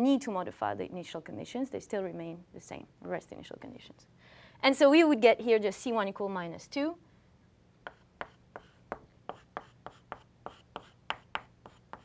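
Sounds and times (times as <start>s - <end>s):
chalk tapping and scraping on blackboard: 7.8s - 12.0s.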